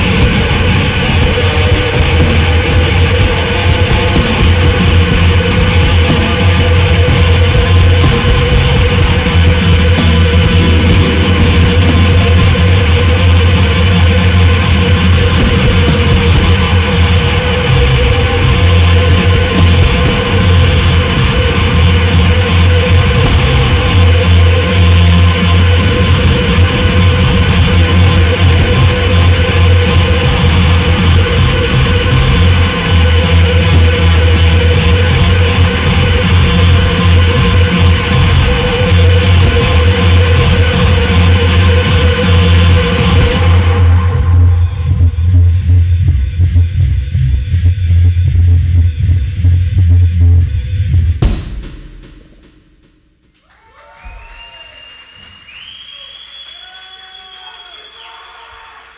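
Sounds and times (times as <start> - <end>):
heavy low drone: 0.0 - 53.0
harsh noise music with drums: 0.0 - 58.9
sharp hit: 4.5 - 24.1, 51.2 - 53.3.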